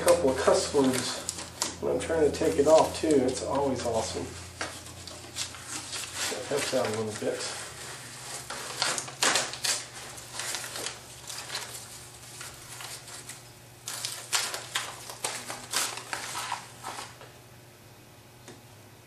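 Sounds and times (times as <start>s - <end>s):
tape peeling and paper tearing: 0.0s - 17.3s.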